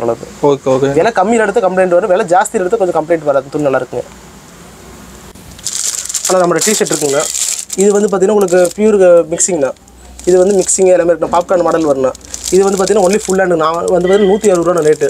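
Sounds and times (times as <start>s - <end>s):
man talking: 0.0s - 4.1s, 6.2s - 15.0s
plastic packaging crinkling: 5.5s - 15.0s.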